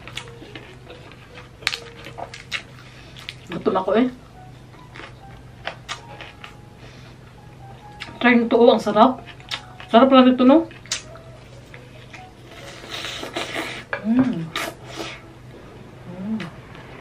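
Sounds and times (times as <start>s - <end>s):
crunchy chewing: 4.8s - 6.6s, 9.2s - 10.0s.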